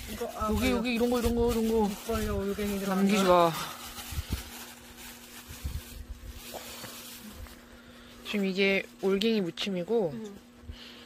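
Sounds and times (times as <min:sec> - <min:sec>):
plastic bag crinkling: 0:00.0 - 0:07.7
steady low hum: 0:00.0 - 0:11.0.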